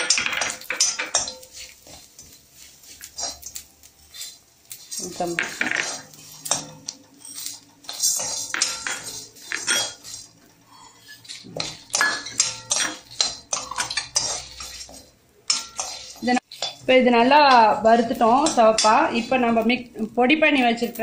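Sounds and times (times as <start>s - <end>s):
metal spoon scraping a pan: 0.0s - 21.0s.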